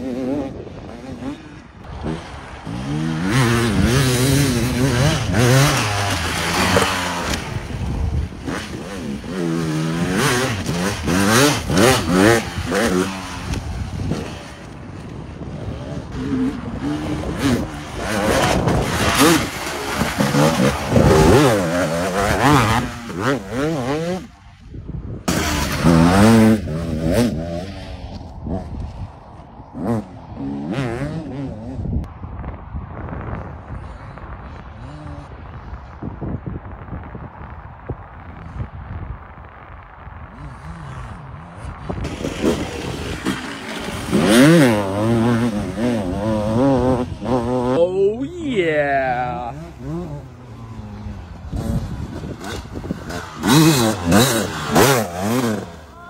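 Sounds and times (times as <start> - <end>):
motocross bike engine revving: 0.0 - 14.8, 15.5 - 24.4, 25.3 - 28.7, 40.4 - 56.0.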